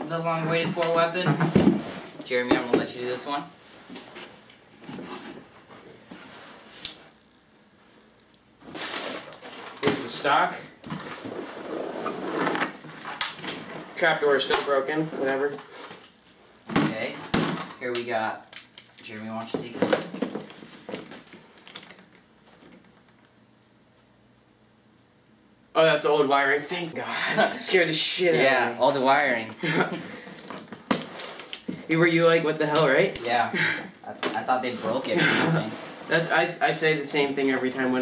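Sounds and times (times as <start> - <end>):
cardboard scraping: 11.0 - 14.2, 34.8 - 38.0.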